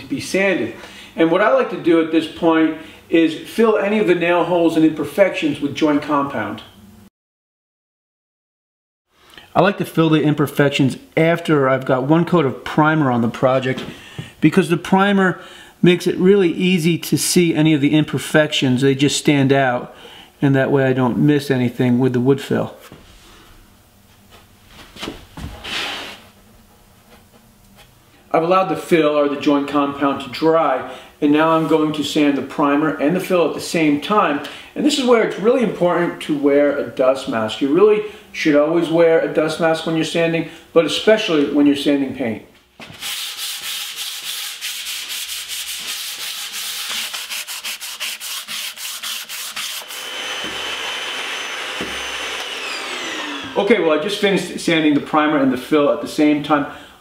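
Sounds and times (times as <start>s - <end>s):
fingertip scraping rub on wood: 43.0s - 49.8s
vacuum cleaner whining: 49.2s - 54.6s.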